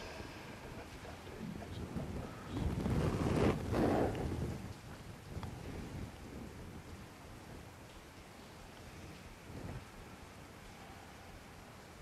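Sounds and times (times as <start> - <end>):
heavy cloth rustling: 2.6 - 4.5.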